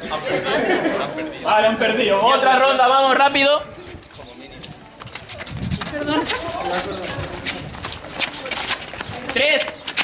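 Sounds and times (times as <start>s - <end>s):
footsteps on paved ground: 0.0s - 10.0s
voices chattering: 0.0s - 10.0s.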